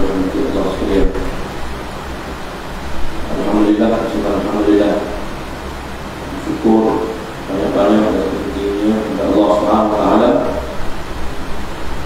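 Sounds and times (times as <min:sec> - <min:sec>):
steady hiss: 0:00.0 - 0:12.0.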